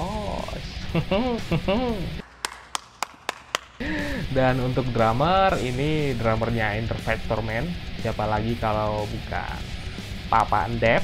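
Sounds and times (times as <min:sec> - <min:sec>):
music: 0:00.0 - 0:03.0, 0:03.8 - 0:11.0.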